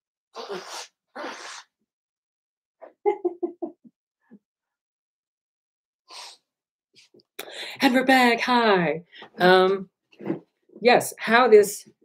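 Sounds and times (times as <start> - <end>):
man blowing his nose: 0.4 - 1.7, 6.1 - 6.4.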